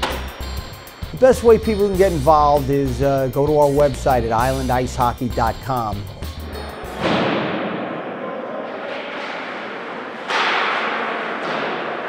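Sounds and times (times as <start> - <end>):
music with drum beat: 0.0 - 7.0
ice hockey rink noise: 6.8 - 12.0.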